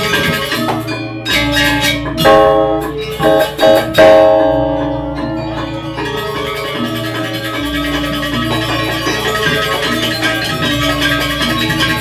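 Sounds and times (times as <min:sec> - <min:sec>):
gamelan music: 0:00.0 - 0:12.0
ringing metallophone stroke: 0:00.0 - 0:12.0.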